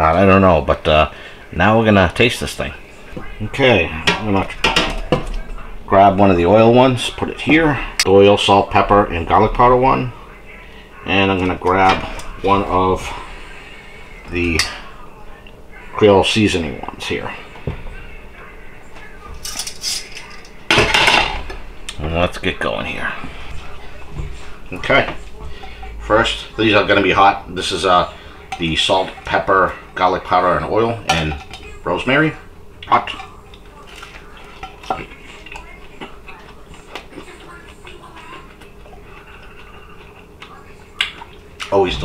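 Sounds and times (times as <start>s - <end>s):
metal tongs clinking: 19.4s - 21.4s
tongs clattering on a plate: 19.4s - 21.6s, 32.8s - 38.0s
person chewing chicken: 38.5s - 41.7s.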